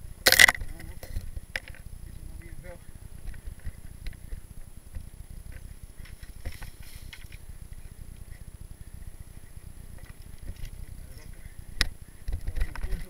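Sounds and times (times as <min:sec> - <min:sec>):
bike tyres rumbling on dirt: 0:00.0 - 0:13.0.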